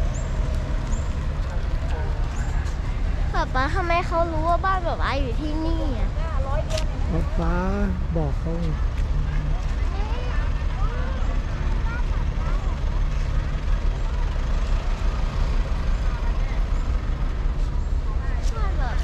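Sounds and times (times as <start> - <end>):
vehicle engines rumbling: 0.0 - 19.0
faint voices talking: 1.6 - 19.0.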